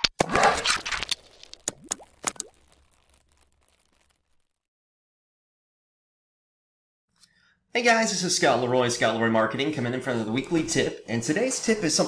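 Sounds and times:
sharp pops: 0.0 - 4.6.

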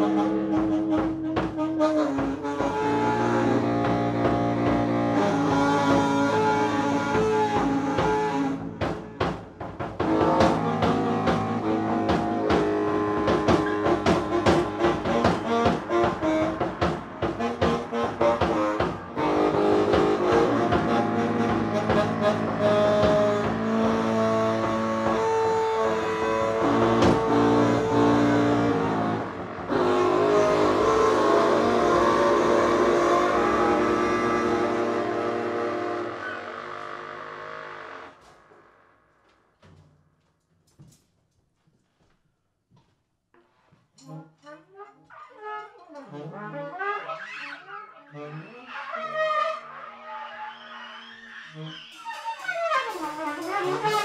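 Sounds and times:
saxophones holding long notes: 0.0 - 9.2, 10.0 - 38.9, 44.0 - 54.0.

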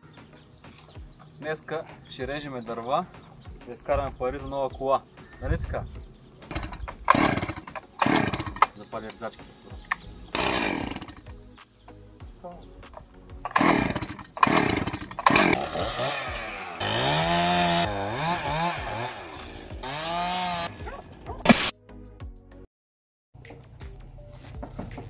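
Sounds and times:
chainsaw starter cord pulls: 6.5 - 11.3, 13.0 - 20.7.

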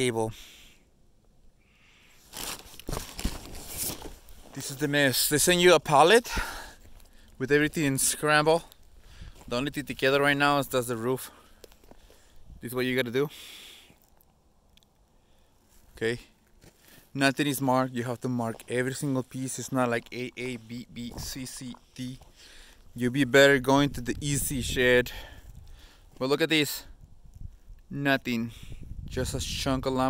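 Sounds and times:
rustling and crunching handling: 2.2 - 12.6.

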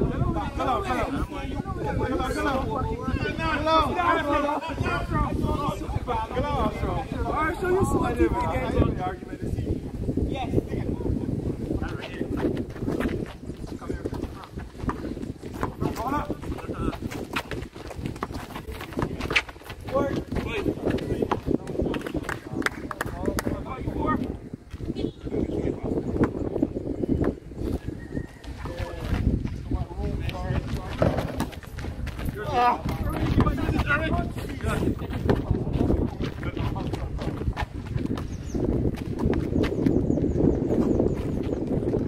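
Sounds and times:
wind rumble on microphone: 0.0 - 42.0
basketball bouncing on concrete: 14.1 - 22.0, 30.9 - 31.9, 35.0 - 35.8.

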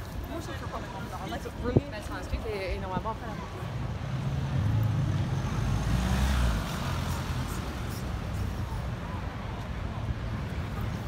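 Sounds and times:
street traffic noise: 0.0 - 11.0
car driving past: 4.4 - 7.5.

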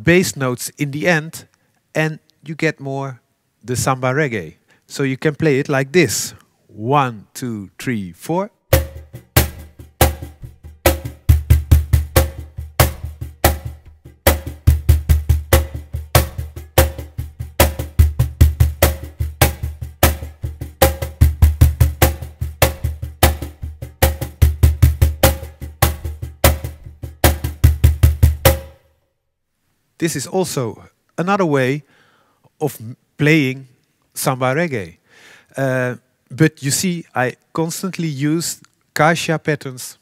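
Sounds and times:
cajon bass tones: 8.7 - 28.8.

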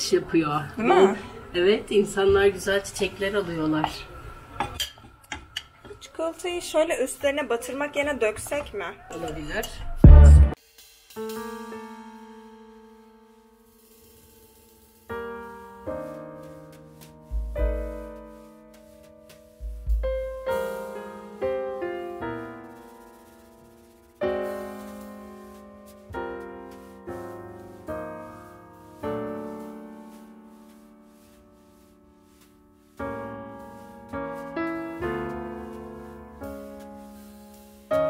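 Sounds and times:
slow piano chords: 11.2 - 13.9, 15.0 - 38.0.

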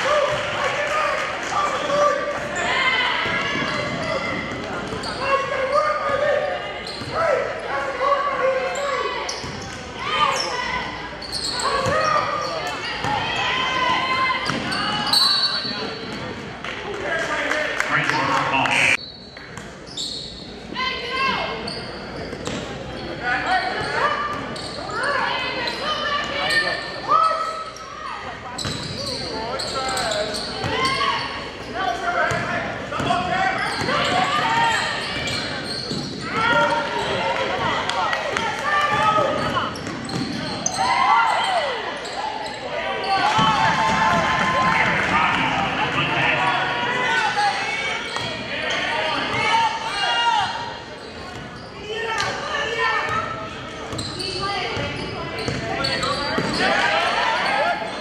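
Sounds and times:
indistinct echoing voices: 17.7 - 19.0.

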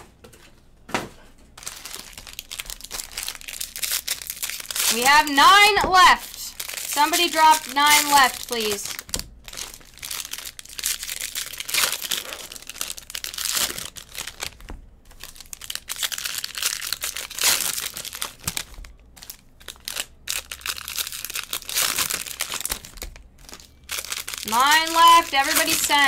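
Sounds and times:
card pack wrappers crinkling: 1.6 - 26.0.

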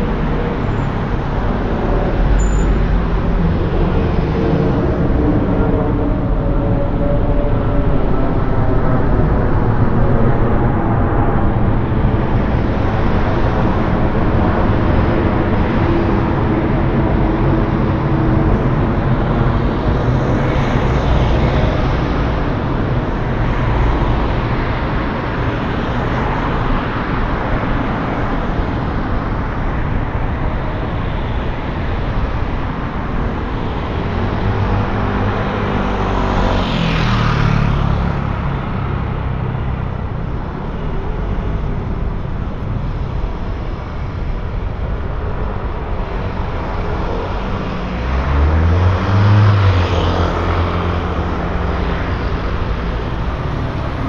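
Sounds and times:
street traffic with cars passing: 0.0 - 54.0.

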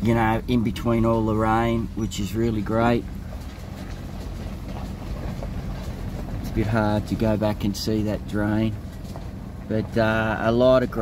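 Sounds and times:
vehicle engine and tyres rumbling: 0.0 - 11.0.

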